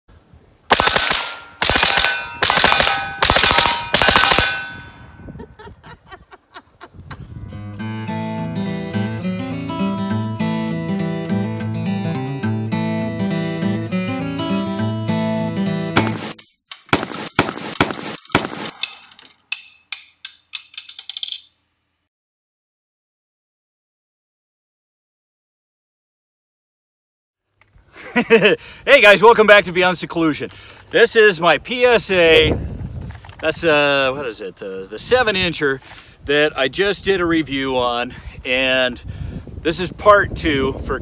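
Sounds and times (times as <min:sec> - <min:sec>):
rifle rapid fire: 0:00.7 - 0:04.8
metallic ringing: 0:00.9 - 0:05.3, 0:16.4 - 0:21.6
acoustic guitar music: 0:07.4 - 0:16.3.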